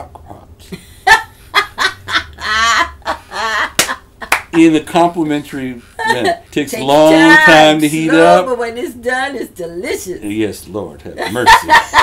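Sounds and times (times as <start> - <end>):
woman laughing heartily: 0.7 - 4.4, 6.0 - 6.4, 11.2 - 12.0.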